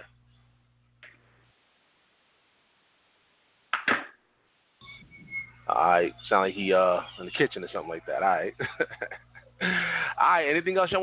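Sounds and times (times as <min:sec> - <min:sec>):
phone line hiss: 0:04.8 - 0:10.2.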